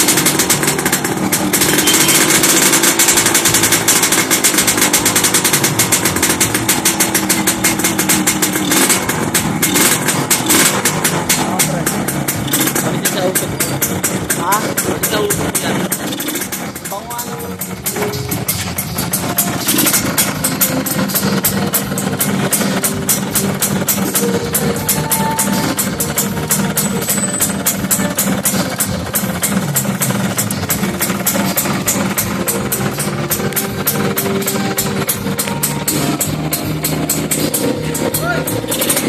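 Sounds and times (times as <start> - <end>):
background music with steady beat: 0.0 - 39.0
motorcycle engine idling: 0.0 - 39.0.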